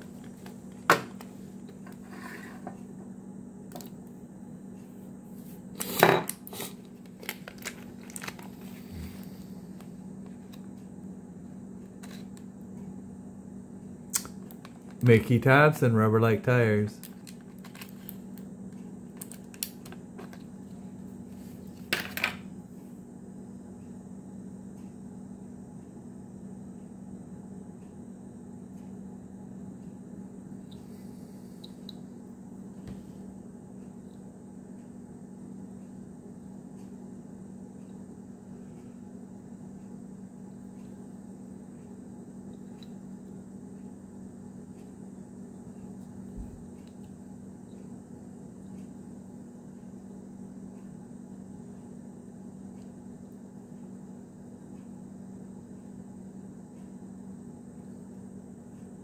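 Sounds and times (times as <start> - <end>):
low steady hum: 0.0 - 59.0
plastic packaging crackling: 7.3 - 8.5.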